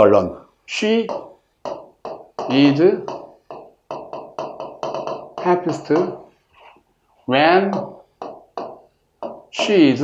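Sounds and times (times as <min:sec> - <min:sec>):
stylus tapping on glass: 0:01.0 - 0:06.4, 0:07.7 - 0:10.0.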